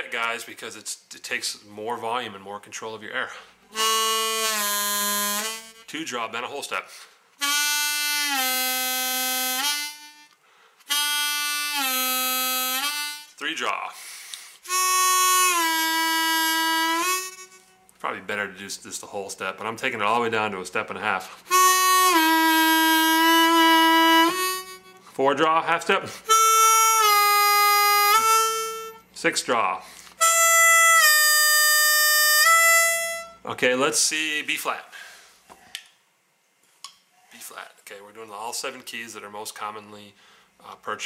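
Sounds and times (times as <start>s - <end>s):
harmonica bent note: 3.7s - 6.0s, 7.4s - 17.8s, 21.3s - 25.1s, 26.1s - 29.1s, 29.9s - 33.4s.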